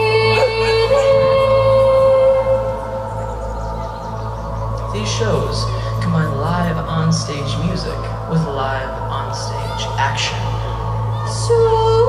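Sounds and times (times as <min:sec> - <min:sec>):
person singing a long note: 0:00.0 - 0:12.0.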